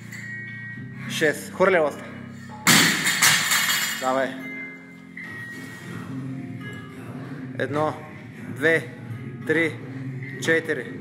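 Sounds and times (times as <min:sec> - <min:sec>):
background music: 0:00.0 - 0:11.0
barbell crashing on rubber floor: 0:02.7 - 0:04.0.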